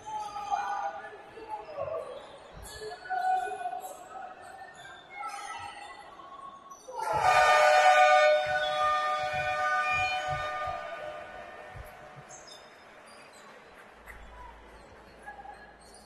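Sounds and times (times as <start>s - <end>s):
game clock horn blast: 7.0s - 12.1s.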